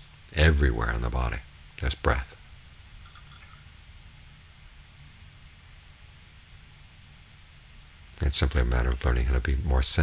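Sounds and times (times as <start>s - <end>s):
low room hum: 0.0s - 10.0s
soft hiss: 0.0s - 10.0s.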